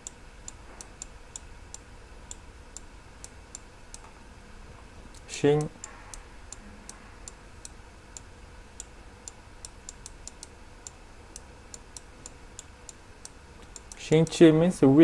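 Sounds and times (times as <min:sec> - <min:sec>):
low room hum: 0:00.0 - 0:15.0
light clicks: 0:05.1 - 0:14.4.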